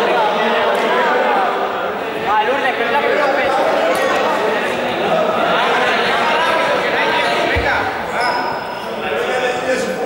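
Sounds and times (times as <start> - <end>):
young people talking with echo: 0.0 - 10.0.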